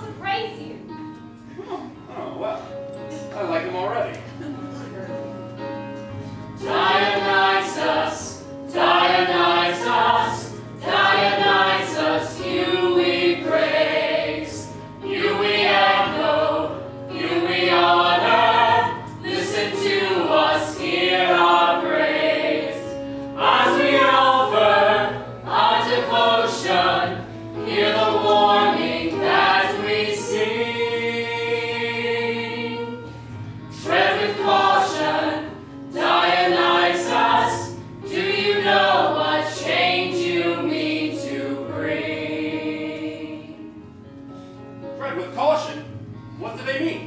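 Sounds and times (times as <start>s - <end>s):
mixed chorus singing: 6.5s - 44.0s.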